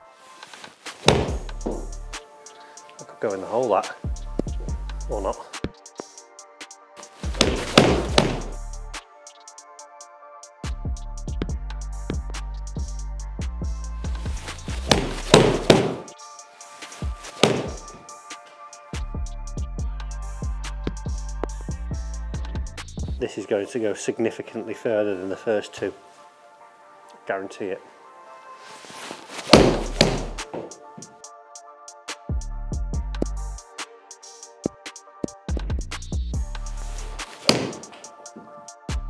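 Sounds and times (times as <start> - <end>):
background music with a beat: 0.0 - 3.1, 3.7 - 23.2, 28.8 - 39.0
golf club thwacking ball: 1.0 - 1.8, 7.2 - 8.6, 14.7 - 16.1, 17.4 - 18.0, 29.4 - 30.7, 37.3 - 38.0
thud: 1.0 - 1.8, 7.3 - 8.5, 14.7 - 16.1, 17.4 - 17.9, 29.5 - 30.7, 37.4 - 37.9.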